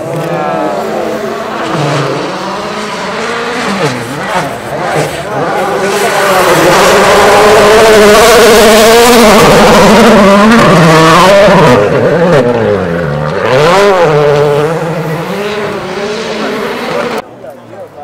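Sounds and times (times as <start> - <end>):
rally car engine revving: 0.0 - 17.3.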